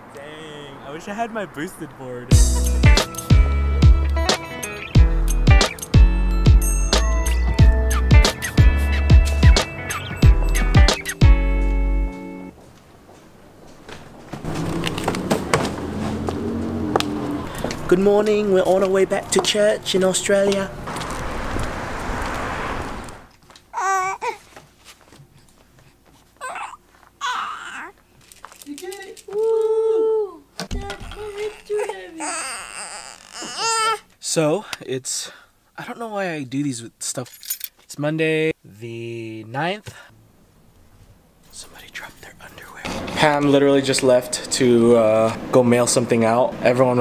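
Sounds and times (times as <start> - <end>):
rushing outdoor noise: 14.3 - 23.3
infant cooing: 23.7 - 24.4, 26.4 - 28.0, 30.0 - 34.1
person whispering: 41.5 - 42.9.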